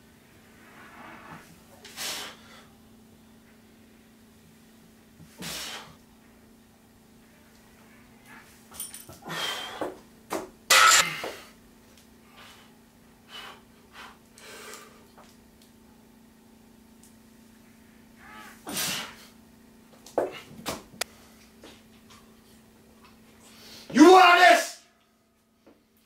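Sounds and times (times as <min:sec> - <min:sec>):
sharp forceful exhales: 0:01.9 - 0:02.7, 0:05.4 - 0:06.0
metal barbell clanks: 0:10.7 - 0:11.2.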